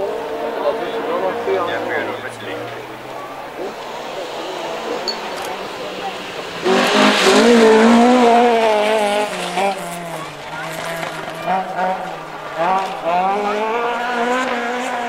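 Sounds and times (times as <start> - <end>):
rally car engine passing by: 0.0 - 15.0.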